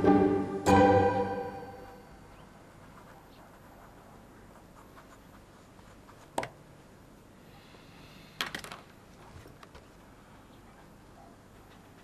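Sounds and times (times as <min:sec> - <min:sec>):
pen scratching on paper: 0:01.8 - 0:06.4.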